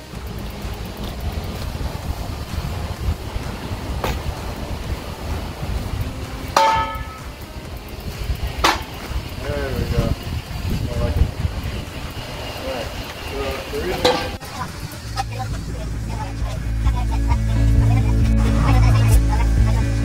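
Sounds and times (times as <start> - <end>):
wind rumble on microphone: 0.0 - 20.0
metal tubing tapping on metal: 6.6 - 7.3
ringing metal clank: 6.6 - 7.4.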